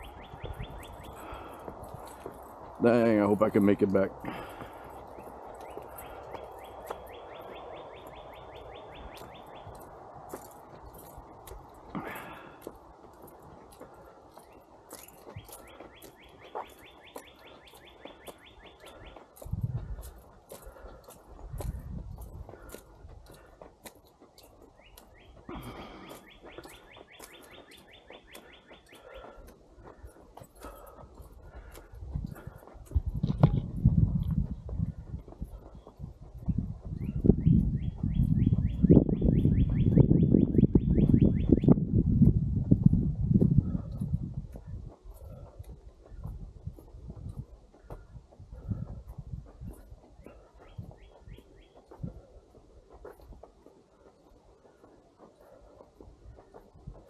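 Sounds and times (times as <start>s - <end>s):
songbird trilling: 0.0s - 1.3s, 5.6s - 9.8s
footsteps: 0.0s - 57.0s
person breathing hard: 0.9s - 2.8s, 4.2s - 7.0s, 10.3s - 16.2s, 17.4s - 24.4s, 25.3s - 36.9s, 43.4s - 57.0s.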